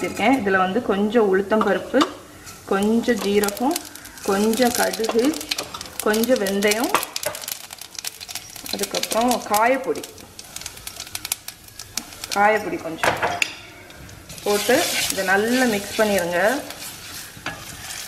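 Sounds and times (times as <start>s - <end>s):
seeds sizzling and popping in oil: 2.0s - 18.0s.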